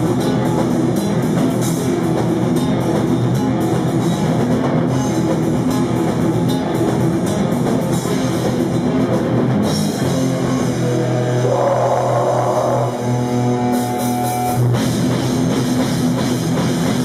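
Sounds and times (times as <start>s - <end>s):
heavy metal band playing: 0.0s - 17.0s.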